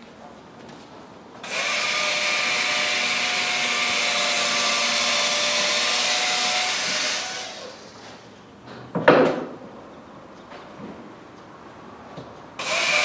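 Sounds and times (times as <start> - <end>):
electric appliance motor whining: 12.6 - 13.0.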